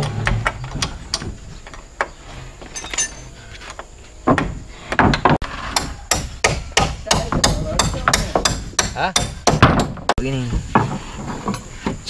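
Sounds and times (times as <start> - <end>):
hammer striking timber: 4.3 - 10.2.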